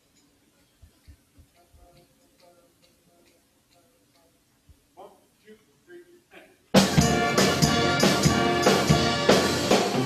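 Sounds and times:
faint clicks: 0.0s - 5.6s.

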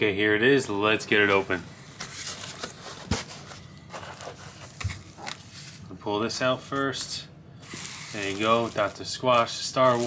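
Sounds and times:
paper rustling: 1.3s - 5.9s, 7.6s - 10.0s
crackly scraping: 7.6s - 10.0s.

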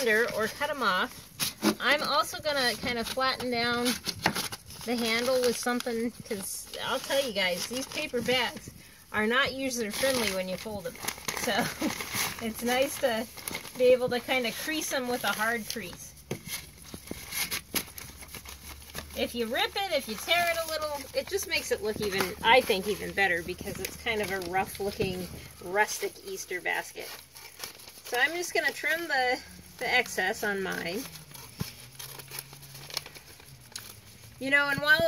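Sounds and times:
scissors snipping paper: 0.0s - 8.6s
paper bag crinkling: 0.0s - 35.0s.

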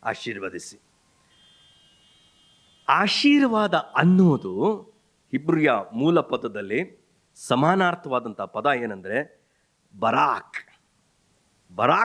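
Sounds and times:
faint high-pitched whine: 0.0s - 12.0s
man speaking loudly: 2.9s - 9.2s, 10.0s - 10.7s, 11.8s - 12.0s.

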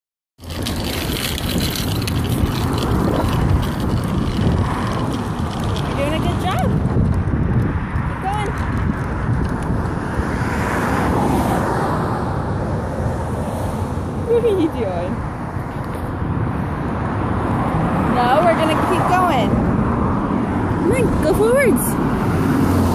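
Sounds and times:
small bike rolling on concrete: 0.4s - 22.9s.

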